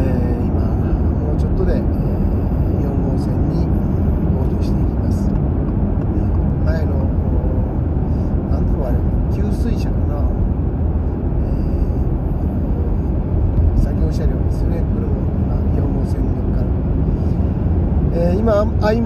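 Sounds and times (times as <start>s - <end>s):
road and tyre rumble in car: 0.0s - 19.0s.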